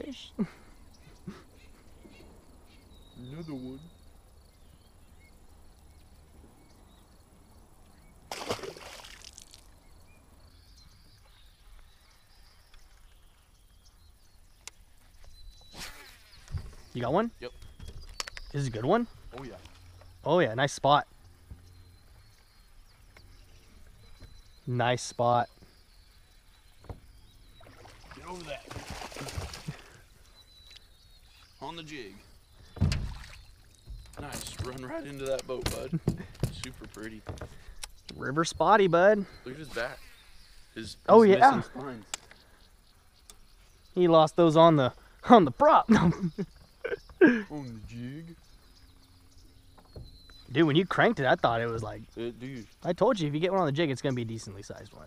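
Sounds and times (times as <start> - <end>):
river ambience: 0.0 - 55.0
water splash: 8.3 - 9.7, 27.6 - 30.0, 32.8 - 33.7.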